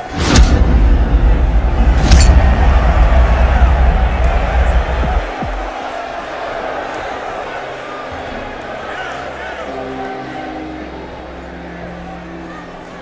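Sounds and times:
arena crowd: 0:00.0 - 0:13.0
deep bass rumble: 0:00.2 - 0:05.7.

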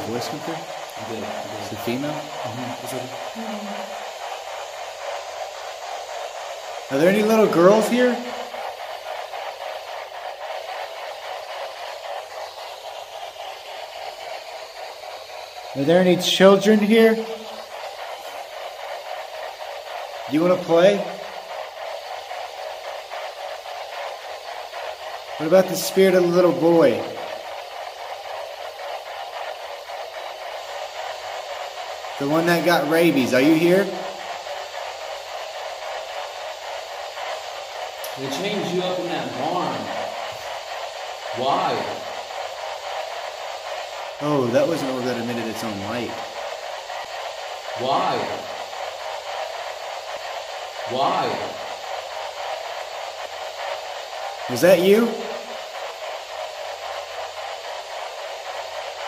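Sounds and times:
faint rapid flutter: 0:00.0 - 0:59.0
static hiss: 0:00.0 - 0:59.0.

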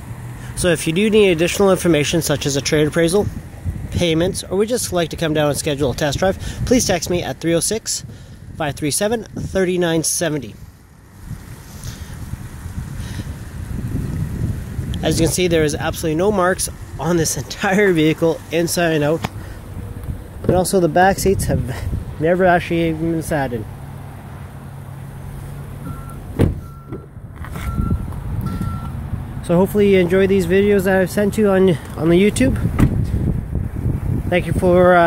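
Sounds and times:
wind buffeting microphone: 0:02.9 - 0:09.8, 0:10.6 - 0:23.5, 0:32.1 - 0:35.0
vehicle warning beep: 0:25.8 - 0:29.0.

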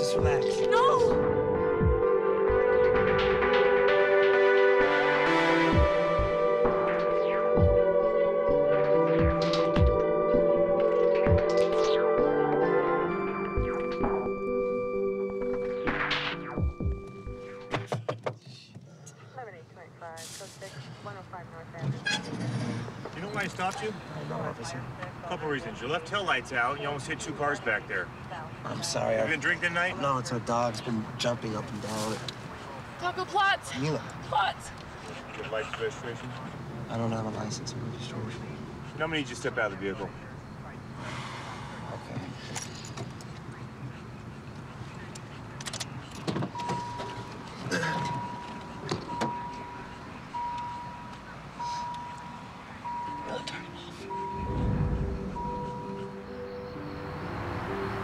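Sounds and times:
car engine low rumble: 0:43.1 - 0:57.9
electronic warning tone: 0:48.1 - 0:58.0.

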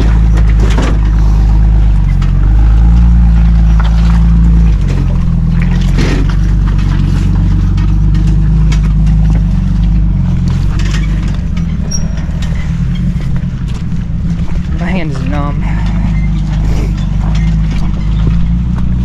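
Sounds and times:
engine running under load: 0:00.0 - 0:19.0.

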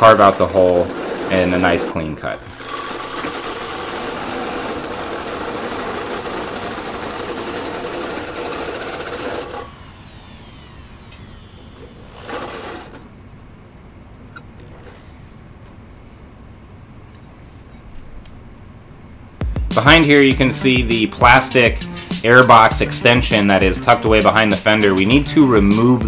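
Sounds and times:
power drill cutting steel: 0:00.0 - 0:13.0.

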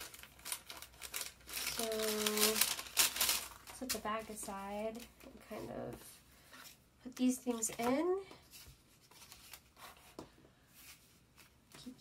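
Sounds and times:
paper crinkling and rustling: 0:00.0 - 0:06.0, 0:06.6 - 0:12.0.

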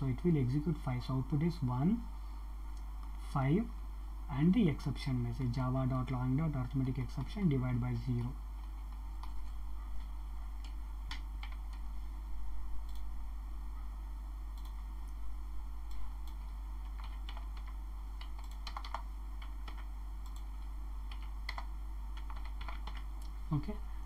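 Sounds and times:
keyboard typing: 0:10.6 - 0:11.9, 0:14.5 - 0:14.8, 0:15.9 - 0:23.4.

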